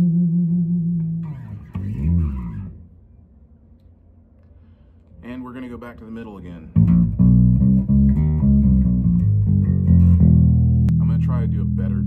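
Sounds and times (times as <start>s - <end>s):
electric bass plucked notes: 0.0s - 2.9s, 6.7s - 12.0s.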